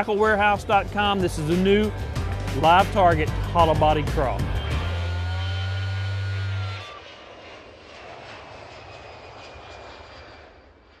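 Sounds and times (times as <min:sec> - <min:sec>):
airplane flyover rushing: 0:00.0 - 0:11.0
loud held low note: 0:01.8 - 0:07.0.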